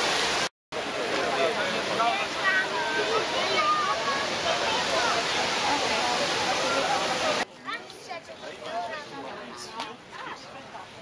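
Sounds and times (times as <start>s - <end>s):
waterfall rushing: 0.0s - 7.5s
few voices outdoors: 0.7s - 11.0s
crowd of voices: 0.8s - 11.0s.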